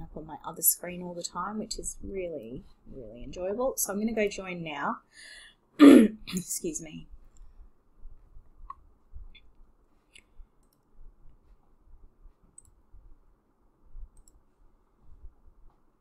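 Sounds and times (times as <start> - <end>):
faint computer mouse clicks: 10.1 - 10.9, 12.5 - 12.8, 14.1 - 14.4.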